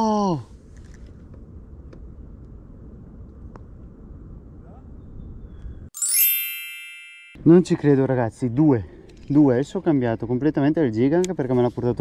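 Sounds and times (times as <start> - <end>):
high chime ding: 6.0 - 7.5.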